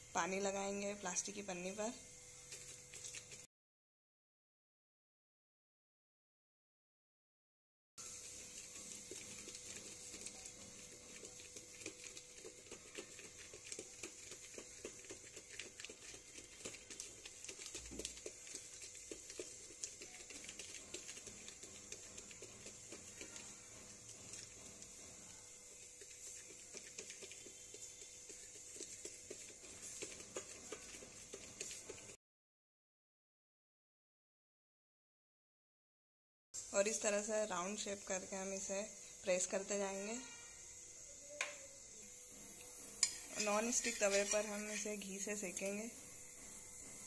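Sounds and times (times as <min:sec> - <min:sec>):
fingertips patting dough: 0:08.0 - 0:32.2, 0:43.0 - 0:45.9
plastic crinkles: 0:08.4 - 0:24.8.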